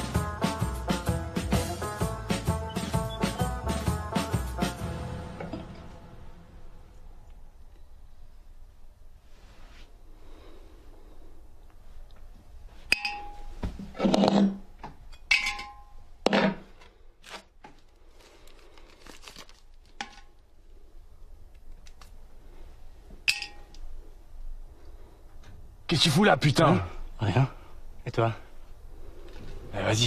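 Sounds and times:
short metallic dings: 12.9s - 13.6s.

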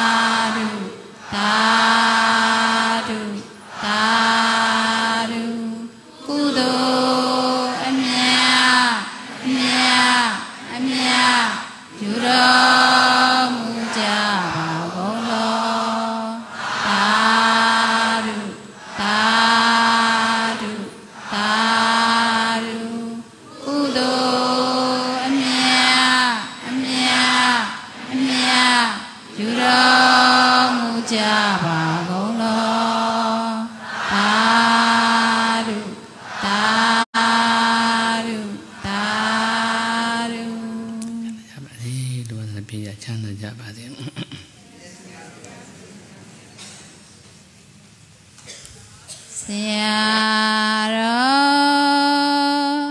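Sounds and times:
person chanting verses: 0.0s - 45.7s.

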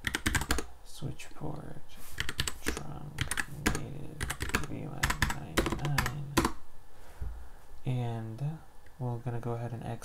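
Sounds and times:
typing on a keyboard: 0.0s - 0.7s, 2.2s - 6.6s.

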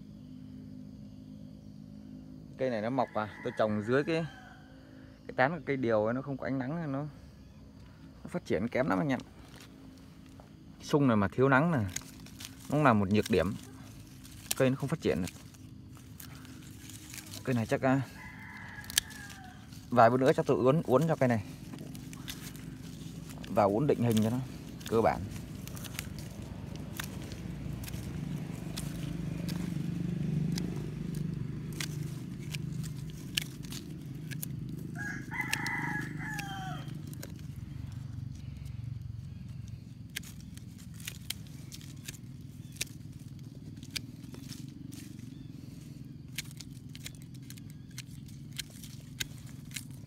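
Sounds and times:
rooster crowing: 2.8s - 5.3s, 15.3s - 38.2s
low background rumble: 4.3s - 50.0s
pruning shears snipping: 8.8s - 50.0s.

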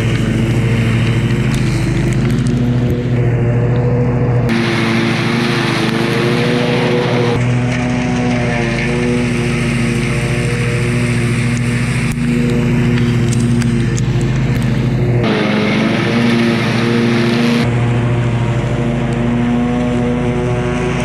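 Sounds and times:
blades mulching wood chips: 0.0s - 21.0s
mower engine running under load: 0.0s - 21.0s.

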